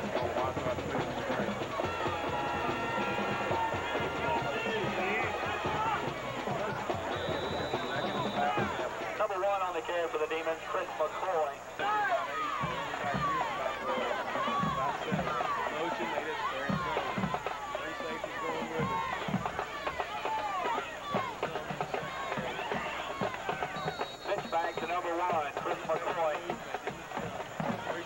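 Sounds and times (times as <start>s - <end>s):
crowd shouting: 0.0s - 28.0s.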